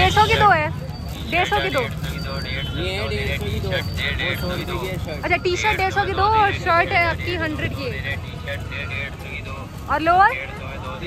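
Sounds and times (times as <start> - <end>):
market and traffic rumble: 0.0 - 11.0.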